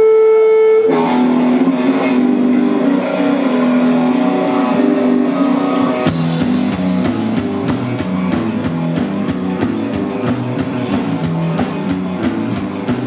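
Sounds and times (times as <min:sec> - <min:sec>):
amplified electric guitar notes: 0:00.0 - 0:13.0.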